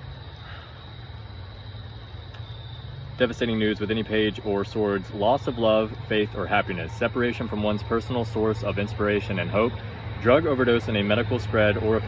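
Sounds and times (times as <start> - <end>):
fountain pump humming: 0.0 - 12.0.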